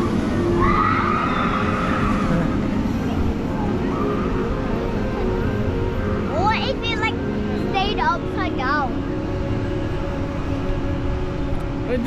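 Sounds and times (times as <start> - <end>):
roller coaster rumble: 0.0 - 12.0
roller coaster whine: 0.0 - 12.0.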